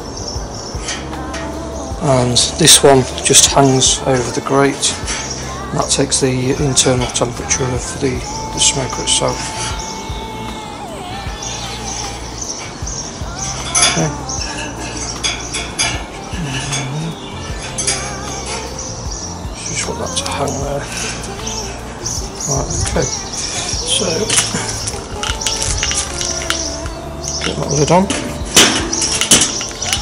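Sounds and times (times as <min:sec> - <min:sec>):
steady low rumble: 0:00.0 - 0:30.0
probe wire clinking on metal grate: 0:19.6 - 0:30.0
metal lid clinking and knocking: 0:27.4 - 0:30.0.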